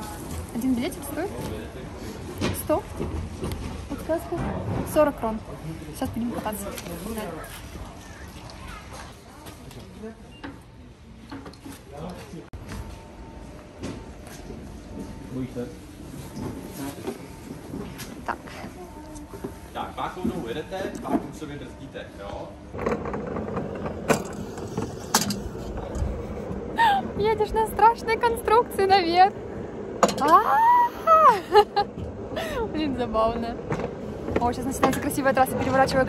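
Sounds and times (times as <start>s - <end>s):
background chatter: 0.0s - 12.6s
mechanical lift rumble: 20.2s - 36.0s.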